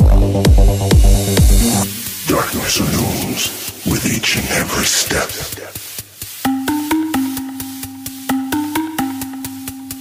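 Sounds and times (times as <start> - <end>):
electronic dance music: 0.0 - 10.0
rumbling crackling noise textures: 2.0 - 6.0.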